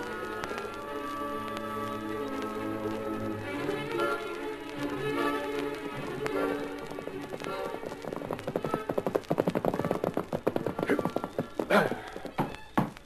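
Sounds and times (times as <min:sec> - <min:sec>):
orchestral music: 0:00.0 - 0:08.9
galloping horse hoofbeats: 0:06.0 - 0:13.0.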